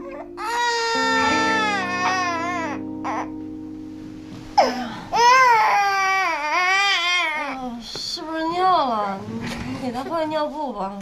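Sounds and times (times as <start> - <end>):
newborn baby crying: 0.0 - 3.3, 4.6 - 7.8
background music chords: 0.0 - 6.7.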